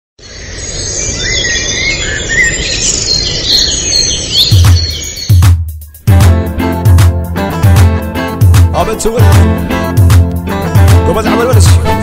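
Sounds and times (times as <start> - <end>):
birds chirping: 0.2 - 8.5
song music: 4.4 - 12.0.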